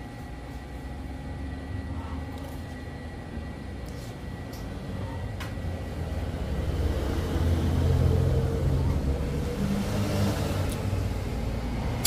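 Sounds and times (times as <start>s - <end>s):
low mechanical rumble: 0.0s - 12.0s.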